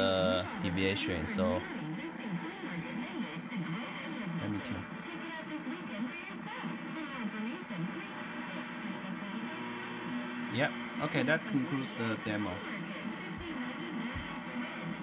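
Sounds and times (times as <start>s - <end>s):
radio speaker test signal: 0.0s - 15.0s.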